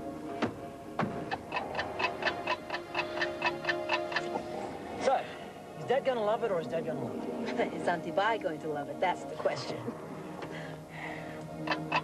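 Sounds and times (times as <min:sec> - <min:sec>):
music with held low note: 0:00.0 - 0:12.0
bomb timer ticking: 0:01.3 - 0:04.4.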